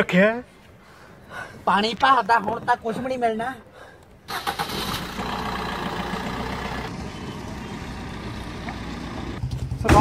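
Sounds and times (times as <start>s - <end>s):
car engine running: 4.7s - 9.8s.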